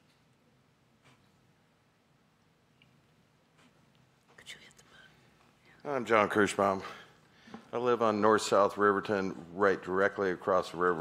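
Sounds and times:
soft hissy whisper sounds: 2.8 - 11.0.

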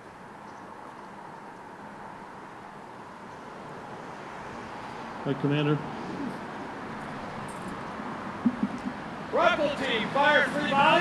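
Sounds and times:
outdoor background noise: 0.0 - 11.0
faint low sounds: 8.4 - 9.1.

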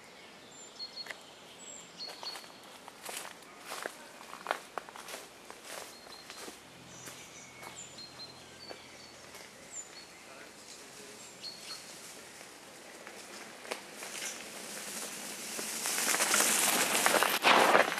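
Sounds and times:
bird chirps: 0.0 - 3.8, 5.1 - 11.9
twigs and leaves crackling: 2.1 - 7.7, 8.7 - 17.9.

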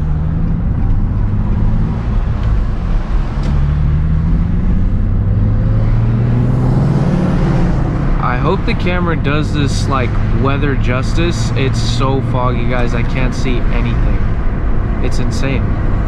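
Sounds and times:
car engine from inside cabin: 0.0 - 16.0
road noise: 0.0 - 16.0.

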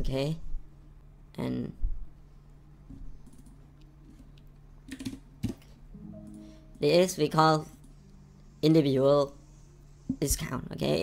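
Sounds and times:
low steady hum: 0.0 - 11.0
computer keyboard keystrokes: 4.9 - 5.8.

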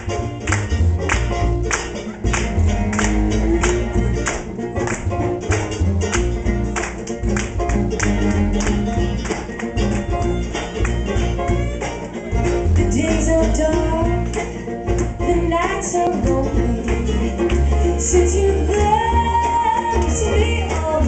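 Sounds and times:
banjo: 0.0 - 21.0
cello: 0.0 - 21.0
fiddles: 0.0 - 21.0
mandolin: 0.0 - 21.0.

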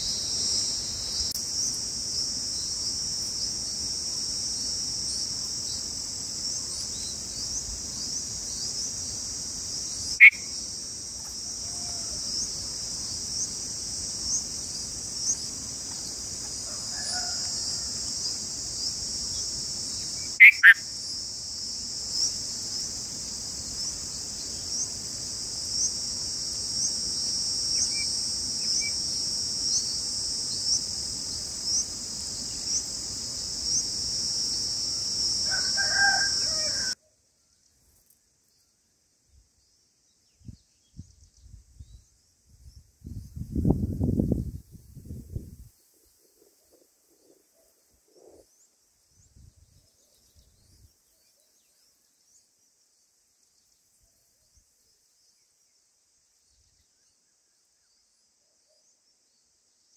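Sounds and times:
insect chorus chirping: 0.0 - 59.9
distant rooster-like call: 11.3 - 12.6, 16.5 - 18.3, 35.4 - 37.1.

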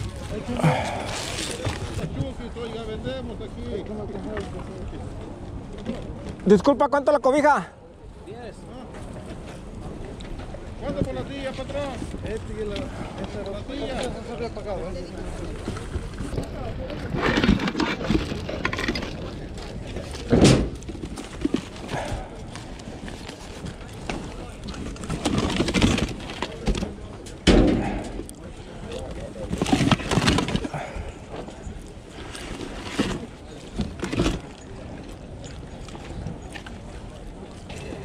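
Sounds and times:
rummaging through plastic goods: 0.0 - 2.8, 15.3 - 38.0
people talking in background: 0.0 - 38.0.

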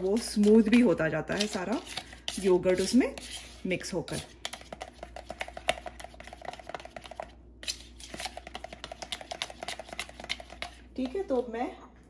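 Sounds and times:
fork beating yogurt in plastic tub: 0.0 - 11.7.

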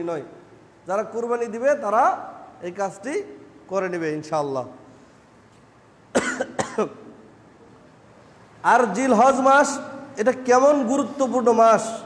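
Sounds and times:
man coughing: 6.1 - 7.1.

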